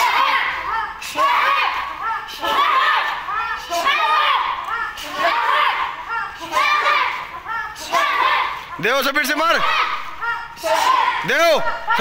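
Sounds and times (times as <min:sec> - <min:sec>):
children shouting: 0:00.0 - 0:08.8, 0:09.4 - 0:12.0.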